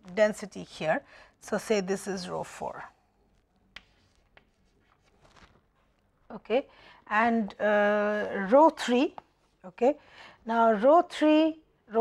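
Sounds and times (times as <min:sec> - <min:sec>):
chalk clicks on blackboard: 0:03.7 - 0:04.6.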